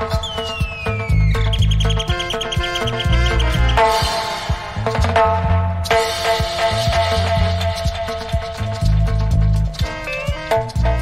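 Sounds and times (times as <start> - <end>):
high sliding whistle: 0.0 - 4.6, 9.8 - 10.7
rapid high chirping trill: 0.0 - 5.2, 5.8 - 11.0
reggae dub instrumental: 0.0 - 11.0.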